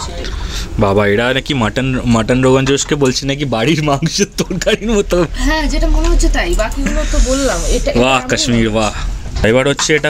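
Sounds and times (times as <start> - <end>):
steady low hum: 0.0 - 10.0
woman talking: 5.4 - 8.6.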